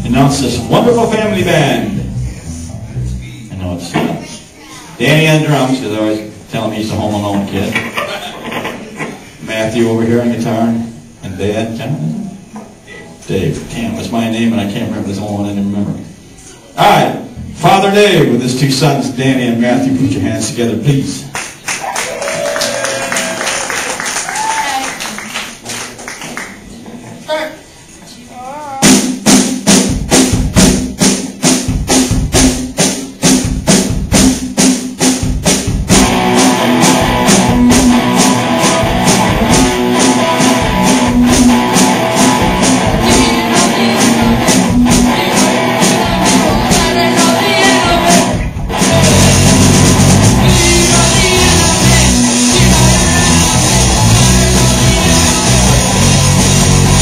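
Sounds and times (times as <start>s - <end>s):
heavy bass drum: 0.0s - 3.4s, 28.7s - 57.0s
rock band playing: 0.0s - 3.4s, 28.8s - 57.0s
drums steady beat: 0.0s - 4.3s, 16.9s - 18.8s, 28.6s - 57.0s.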